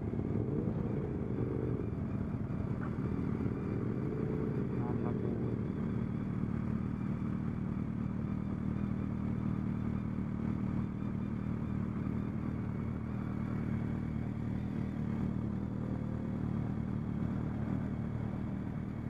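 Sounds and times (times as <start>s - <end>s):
motorcycle engine running: 0.0s - 19.0s
wind and road noise: 0.0s - 19.0s.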